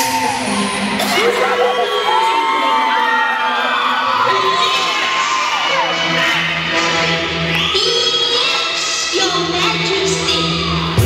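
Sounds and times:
audience cheering loudly: 0.0 - 7.7.

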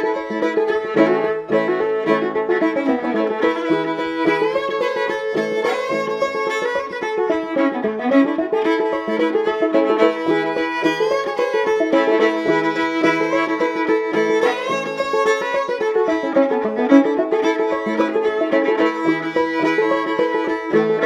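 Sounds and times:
bowed fiddle melody: 0.0 - 21.0
plucked banjo rhythm: 0.0 - 21.0.

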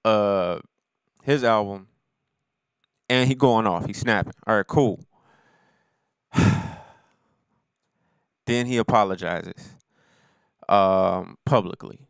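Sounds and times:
man sighing: 6.4 - 7.1.

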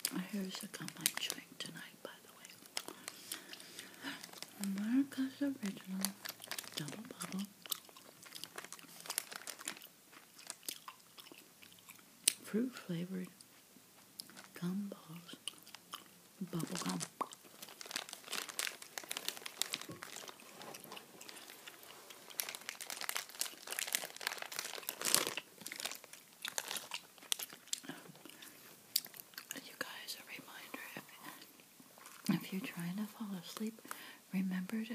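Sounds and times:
soft voiced sounds: 16.4 - 17.4.

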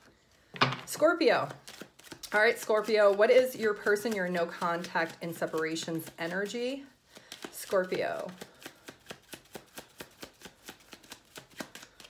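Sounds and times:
cards being shuffled: 1.4 - 12.0.

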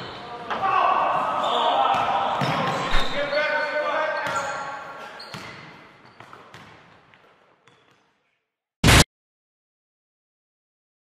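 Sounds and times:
basketball bouncing: 6.2 - 6.8.

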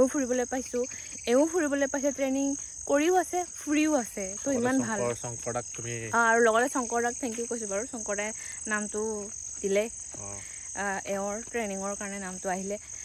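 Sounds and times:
woman talking: 0.0 - 5.1, 6.2 - 10.0, 10.7 - 13.0
insects chirring: 0.0 - 13.0.

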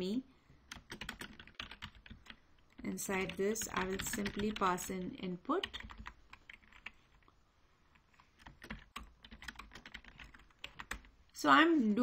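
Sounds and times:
typing on computer keyboard: 0.7 - 5.0, 5.6 - 7.2, 8.0 - 11.1.

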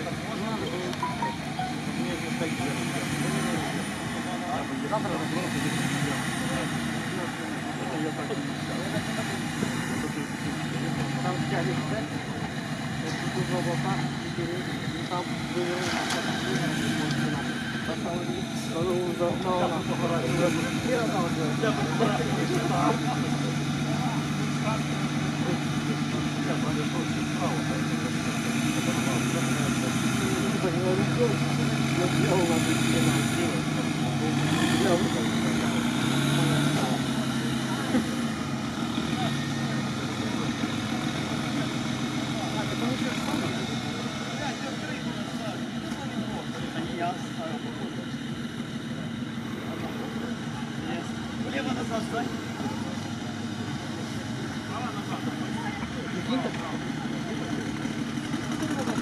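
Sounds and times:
engine running at low revs: 0.0 - 59.0
people talking: 0.0 - 59.0.

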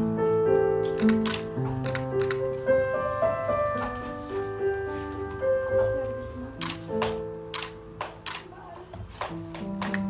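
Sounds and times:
soft background music: 0.0 - 10.0
camera shutter clicks: 1.0 - 2.4, 6.6 - 6.9, 7.5 - 8.5.

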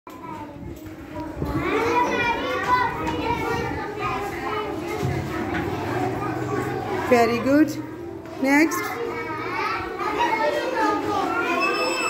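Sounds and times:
children talking and calling out: 0.1 - 12.0.

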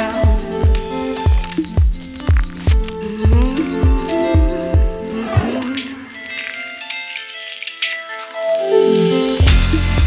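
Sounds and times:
deep kick drum beat: 0.2 - 5.0.

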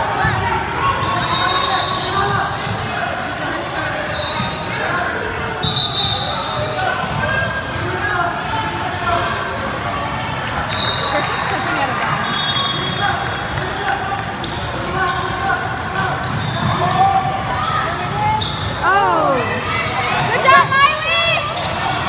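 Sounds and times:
spectators chattering: 0.0 - 22.0
high-pitched shoe squeaks: 0.8 - 6.5.

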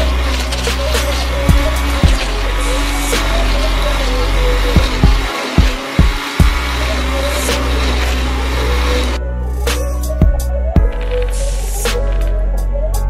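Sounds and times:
electric blender whirring: 0.0 - 9.2
background music: 0.0 - 13.0.

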